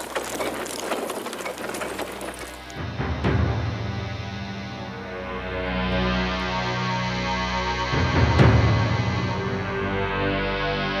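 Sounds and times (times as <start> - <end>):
wheels clattering: 0.0 - 2.9.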